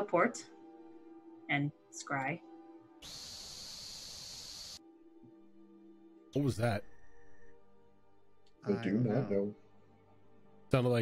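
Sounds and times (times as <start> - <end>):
airy hiss into microphone: 3.0 - 4.8.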